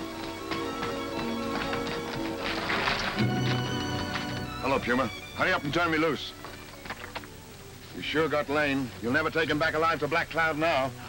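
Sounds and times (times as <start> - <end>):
horse hoofbeats: 0.0 - 7.5
orchestral film music: 0.0 - 7.6.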